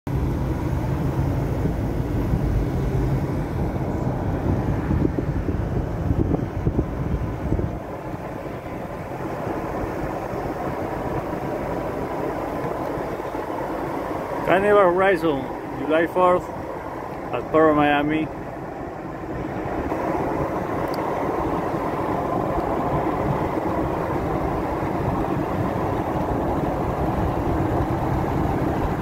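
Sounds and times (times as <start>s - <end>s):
road noise inside moving car: 0.1s - 29.0s
wind buffeting: 0.1s - 29.0s.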